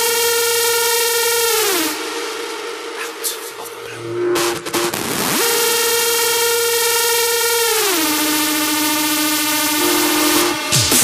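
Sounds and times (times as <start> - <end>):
buzzy synthesizer tone: 0.0 - 11.0.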